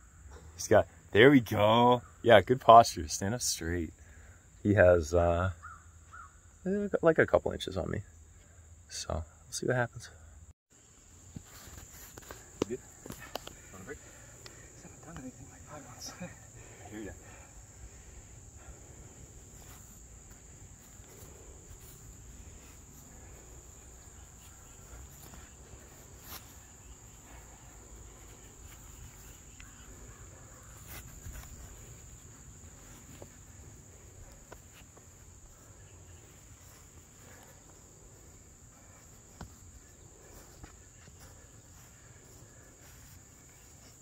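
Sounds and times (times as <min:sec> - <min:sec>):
high-pitched insect chorus: 0:00.0 - 0:44.0.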